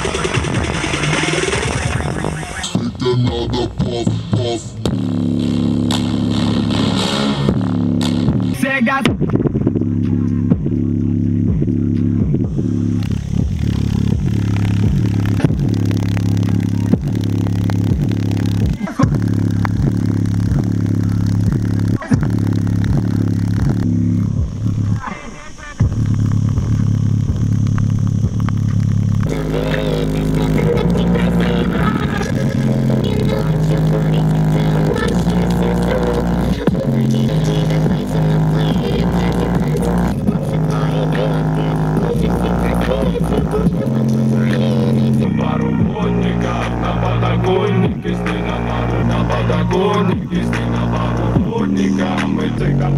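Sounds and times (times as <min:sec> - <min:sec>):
bass-heavy music through speaker: 0:00.0 - 0:52.9.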